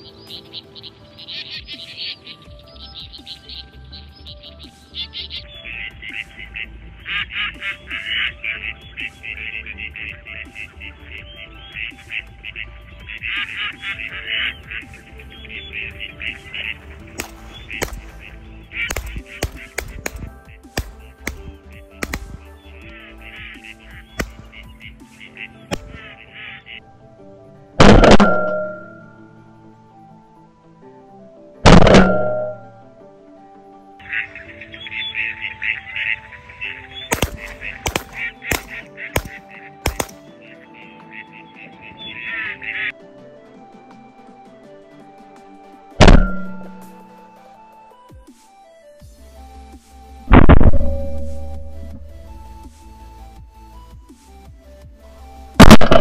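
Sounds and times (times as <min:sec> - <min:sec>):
background music: 0:00.0 - 0:56.0
ducks quacking: 0:04.4 - 0:26.8, 0:34.0 - 0:43.0
loud shotgun shot: 0:17.2 - 0:22.6, 0:24.2 - 0:24.6, 0:27.8 - 0:28.7, 0:31.7 - 0:32.5, 0:37.1 - 0:40.2, 0:46.0 - 0:46.5, 0:50.3 - 0:50.8, 0:55.6 - 0:56.0.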